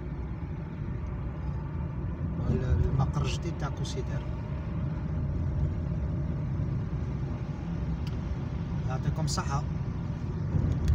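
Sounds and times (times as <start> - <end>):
car engine and road noise: 0.0 - 10.9.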